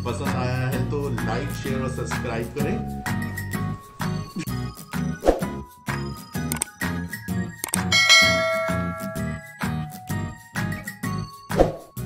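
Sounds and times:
background music with steady beat: 0.0 - 12.0
bright bell chime: 7.9 - 9.9.

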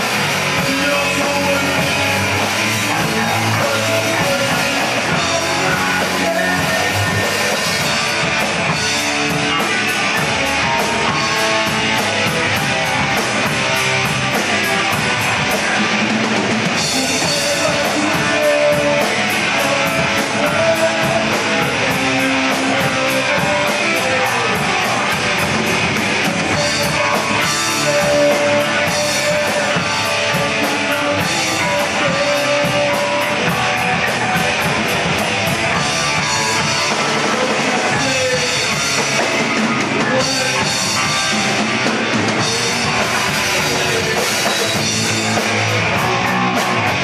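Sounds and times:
distorted electric guitar: 0.0 - 47.0
fast drums: 0.0 - 47.0.

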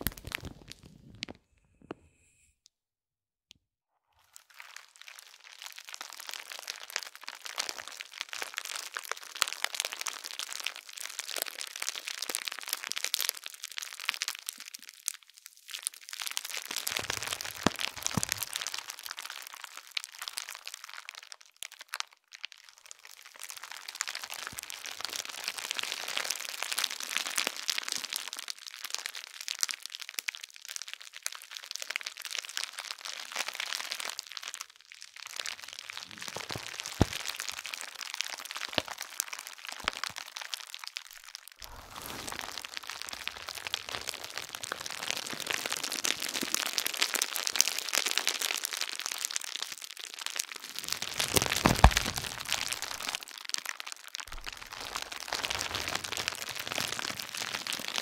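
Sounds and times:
bubble wrap crackling: 0.0 - 1.3, 4.3 - 22.0, 31.2 - 58.0.

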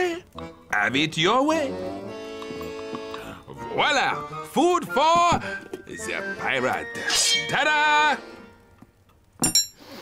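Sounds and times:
person speaking: 0.0 - 2.1, 2.9 - 8.4
cutlery clinking on table: 9.4 - 9.8.

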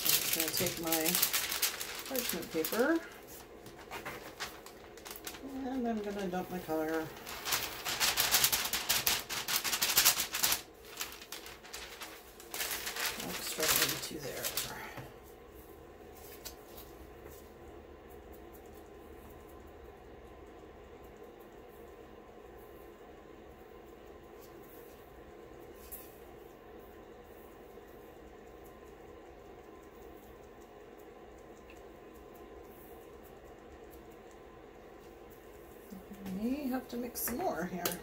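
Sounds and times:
faint room hum: 0.0 - 38.0.

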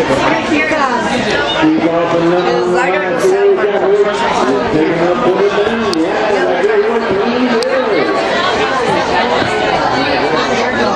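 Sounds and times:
people talking at once: 0.0 - 10.9.

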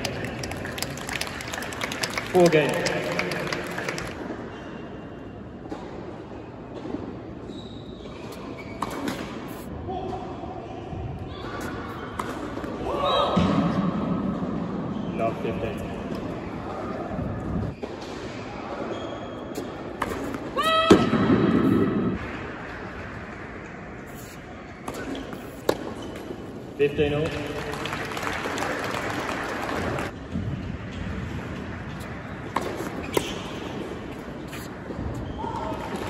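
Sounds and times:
ball bouncing on hard court: 31.9 - 36.0
racket hitting ball: 32.5 - 35.2.

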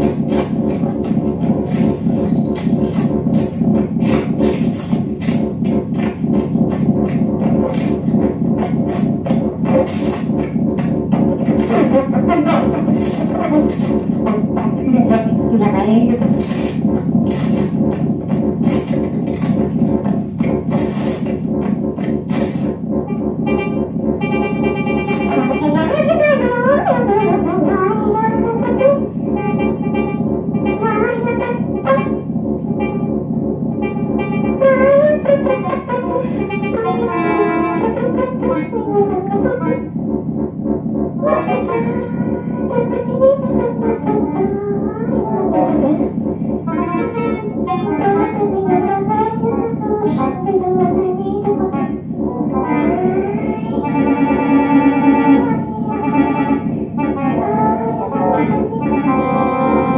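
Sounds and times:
noisy bursts: 0.0 - 50.4
rapid pulsing high tone: 0.0 - 59.9
synth drone: 0.0 - 59.9
wordless vocals sliding in pitch: 0.0 - 59.9.

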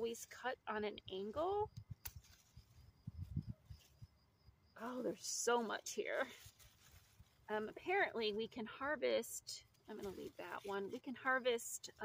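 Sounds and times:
stems bumping and rustling: 1.1 - 4.1, 4.8 - 12.0
scissors snipping a stem: 1.7 - 2.4.

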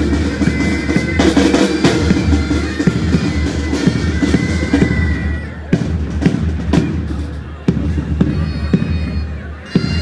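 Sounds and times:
bagpipes playing: 0.0 - 5.7, 8.2 - 10.0
drums beating a march: 0.0 - 10.0.

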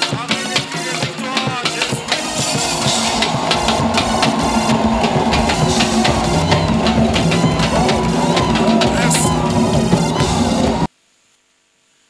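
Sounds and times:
congregation clapping: 0.0 - 10.9
congregation singing: 0.0 - 10.9
quick steady drum beat: 0.0 - 10.9.

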